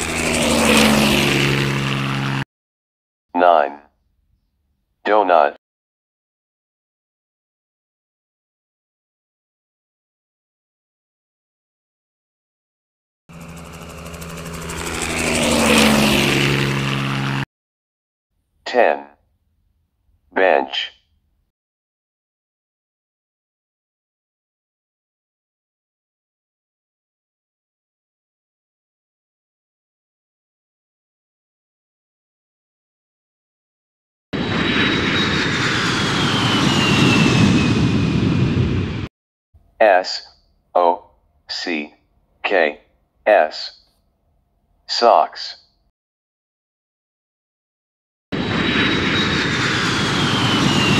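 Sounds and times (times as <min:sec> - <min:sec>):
propeller aircraft passing by: 0:00.0 - 0:02.4, 0:13.3 - 0:17.5, 0:34.4 - 0:39.1, 0:48.4 - 0:50.9.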